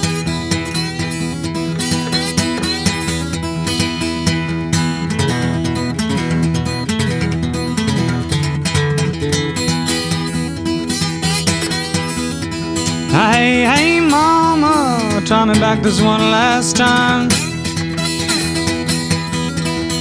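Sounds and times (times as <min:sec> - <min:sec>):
acoustic blues guitar: 0:00.0 - 0:20.0.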